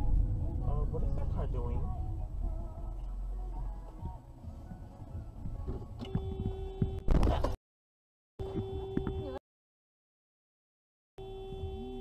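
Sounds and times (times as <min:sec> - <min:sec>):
car cabin rumble: 0:00.0 - 0:07.6, 0:08.4 - 0:09.4.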